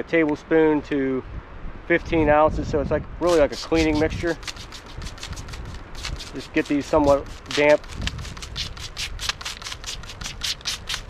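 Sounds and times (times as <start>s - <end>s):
trigger spray bottle squirting: 3.3s - 11.0s.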